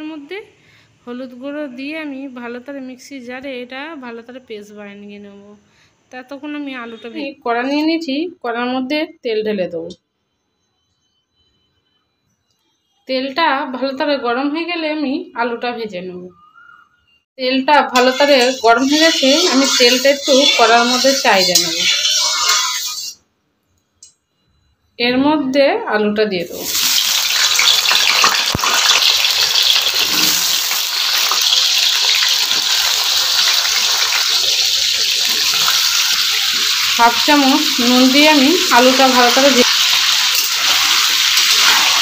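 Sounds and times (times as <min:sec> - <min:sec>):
potatoes sizzling in hot oil: 0:18.0 - 0:23.1, 0:26.6 - 0:42.0.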